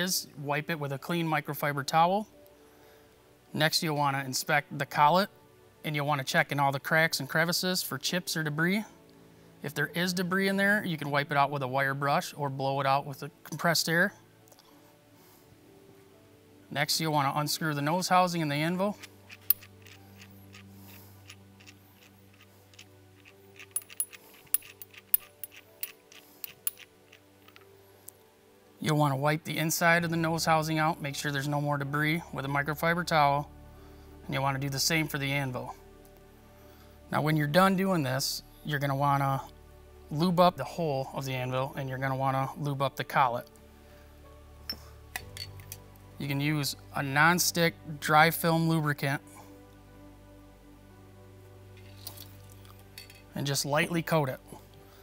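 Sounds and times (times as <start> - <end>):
soft background music: 0.0 - 55.0
metal parts clinking: 19.3 - 27.7, 45.1 - 45.8, 51.9 - 53.3.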